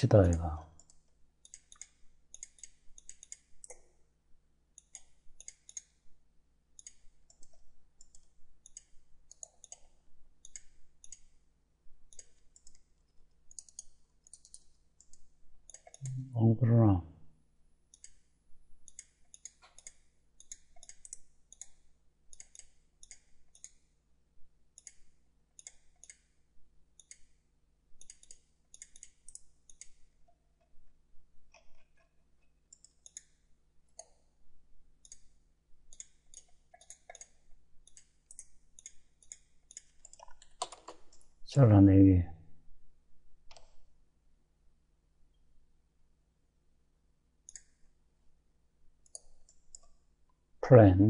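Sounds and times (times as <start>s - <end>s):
computer mouse clicking: 0.3s - 3.9s, 4.8s - 6.0s, 6.8s - 11.3s, 12.1s - 12.9s, 13.5s - 16.2s, 17.9s - 23.9s, 24.7s - 26.3s, 27.0s - 27.4s, 28.0s - 30.1s, 31.4s - 34.3s, 35.0s - 35.3s, 35.9s - 41.3s, 43.5s - 43.9s, 47.4s - 47.9s, 49.0s - 50.0s.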